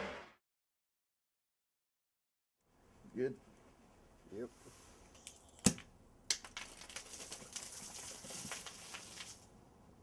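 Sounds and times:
crackling fizz: 0:05.2 - 0:09.5.

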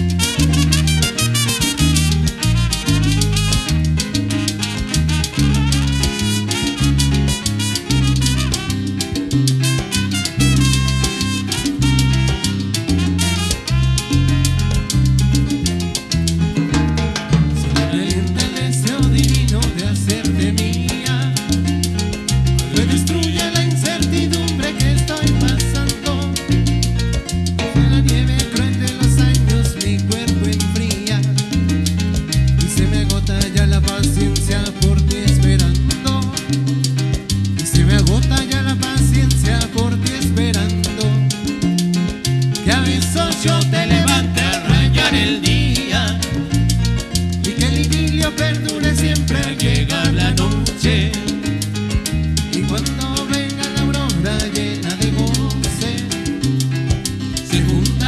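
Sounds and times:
bass: 0:00.0 - 0:58.0
keyboard: 0:00.0 - 0:58.0
latin percussion dance beat: 0:00.0 - 0:58.0
brass section: 0:00.1 - 0:14.9, 0:44.0 - 0:45.5.

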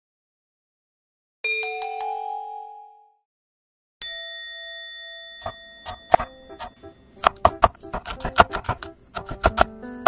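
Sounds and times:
bell-like chime dings: 0:01.4 - 0:03.2, 0:04.0 - 0:07.1.

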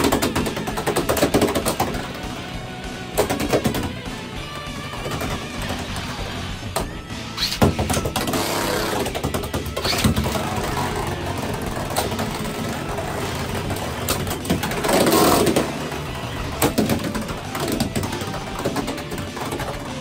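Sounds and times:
tops clacking together: 0:00.0 - 0:02.4, 0:03.0 - 0:20.0
spinning tops whirring: 0:00.0 - 0:20.0
spinning top launch: 0:07.3 - 0:17.5.

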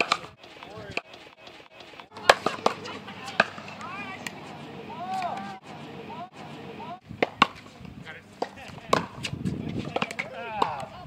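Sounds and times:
paddles striking plastic ball: 0:00.0 - 0:04.4
faint voices: 0:00.0 - 0:11.0.

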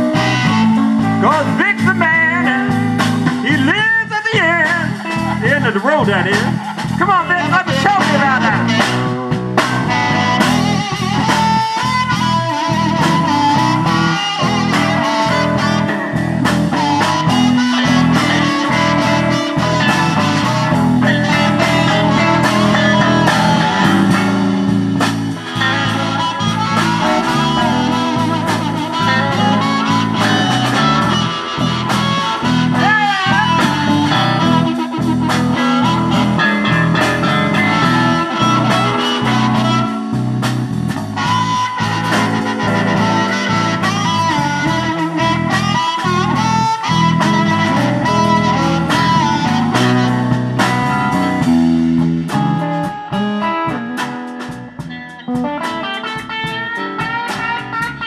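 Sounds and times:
harmonica: 0:00.0 - 0:53.7
electric bass: 0:00.0 - 0:58.0
electric guitar with bent notes: 0:00.0 - 0:58.0
steady drum beat: 0:00.0 - 0:58.0.

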